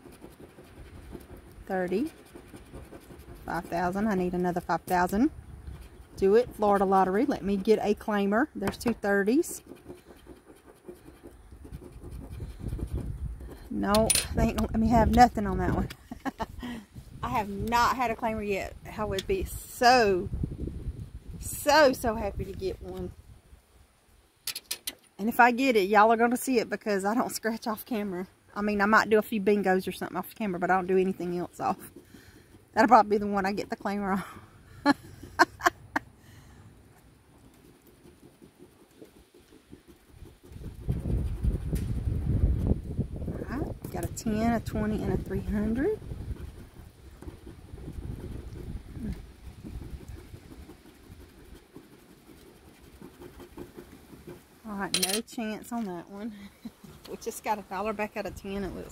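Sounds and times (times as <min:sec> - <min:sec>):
coin scratching a ticket: 0:00.0 - 0:05.2, 0:08.7 - 0:16.4, 0:54.9 - 0:55.3
wind noise on microphone: 0:02.7 - 0:09.1, 0:11.5 - 0:23.6, 0:40.1 - 0:51.6.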